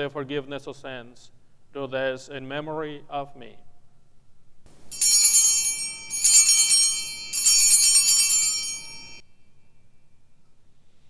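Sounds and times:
cluster of small bells ringing: 4.9s - 9.2s.

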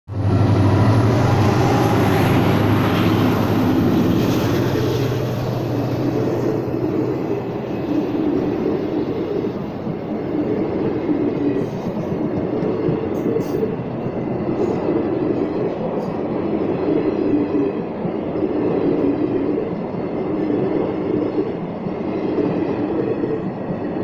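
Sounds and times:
diesel locomotive engine hum: 0.1s - 24.0s
train wheels on rails: 0.1s - 24.0s.

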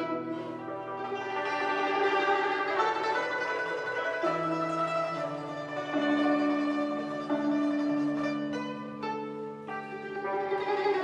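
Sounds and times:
hammered dulcimer and zither melody: 0.0s - 11.0s.

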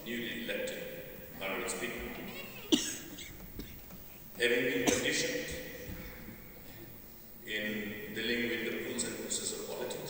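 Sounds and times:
person coughing: 2.4s - 3.8s, 4.8s - 6.2s.

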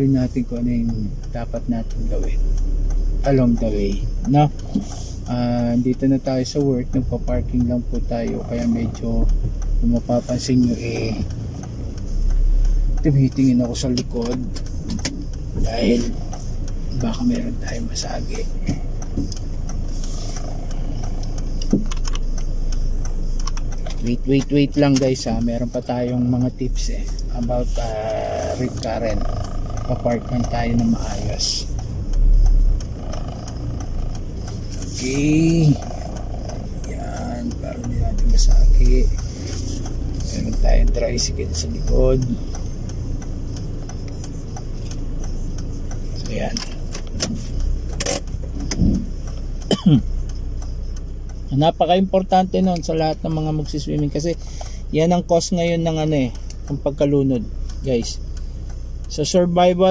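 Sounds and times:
car engine hum: 0.0s - 59.9s
faint clicks and rattles: 0.0s - 59.9s.

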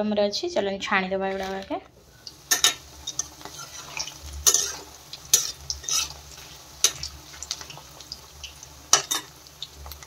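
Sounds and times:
vegetables sizzling in hot oil: 1.3s - 10.0s
metal spatula scraping a pan: 2.4s - 7.8s, 8.9s - 9.4s.

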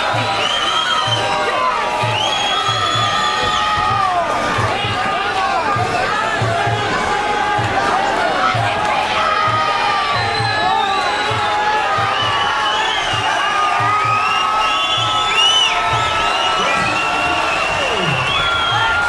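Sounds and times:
crowd shouting and cheering: 0.0s - 19.0s.

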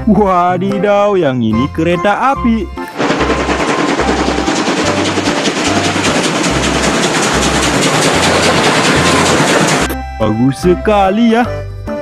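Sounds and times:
steam locomotive exhaust chuffing: 3.0s - 10.0s.

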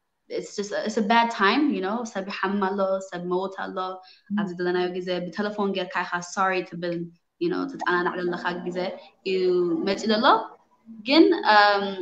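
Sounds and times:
woman talking: 0.3s - 10.5s, 11.1s - 12.0s.

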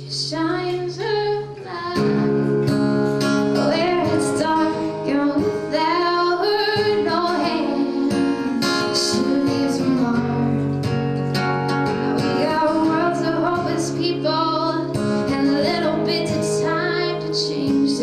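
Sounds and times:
woman singing: 0.0s - 11.0s, 12.1s - 18.0s
strummed acoustic guitar: 0.0s - 18.0s.

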